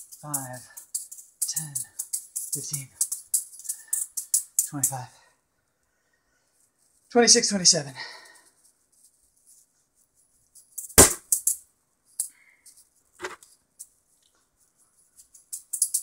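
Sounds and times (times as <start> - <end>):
juggling balls clacking together: 0.0 - 5.0, 15.4 - 16.0.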